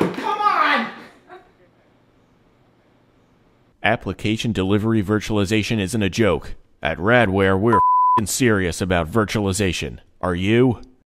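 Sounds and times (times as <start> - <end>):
person shouting: 0.0 - 1.1.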